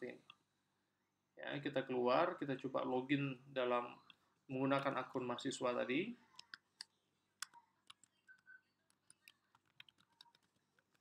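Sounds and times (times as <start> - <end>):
typing on computer keyboard: 7.4 - 11.0.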